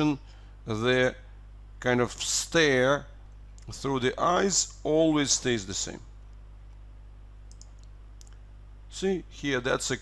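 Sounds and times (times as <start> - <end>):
low electrical hum: 0.0 - 10.0
faint computer clicks: 7.5 - 8.4.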